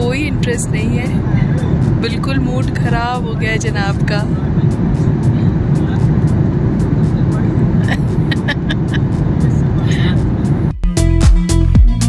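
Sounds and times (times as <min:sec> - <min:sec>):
faint passenger voices: 0:00.0 - 0:10.6
airliner cabin rumble: 0:00.0 - 0:10.8
music: 0:00.0 - 0:12.0.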